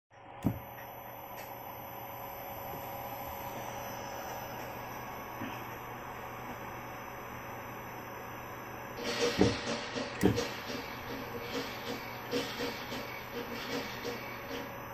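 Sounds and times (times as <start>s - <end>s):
servo motor electrical whine: 0.2s - 14.9s.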